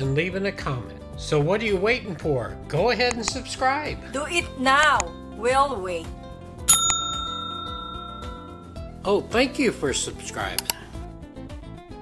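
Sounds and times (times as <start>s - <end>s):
bell-like notification ding: 6.7s - 9.0s.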